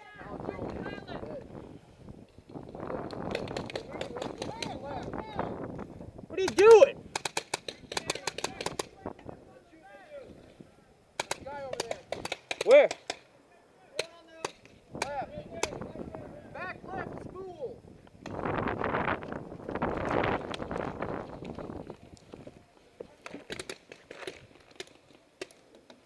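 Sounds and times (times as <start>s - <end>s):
paintball markers firing: 3.0s - 4.8s, 6.4s - 9.0s, 11.2s - 13.3s, 14.0s - 15.8s, 23.2s - 25.9s.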